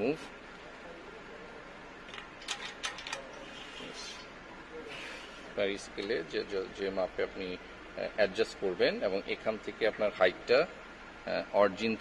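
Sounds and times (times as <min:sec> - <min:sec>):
metallic clicks and scrapes: 0:02.1 - 0:04.2.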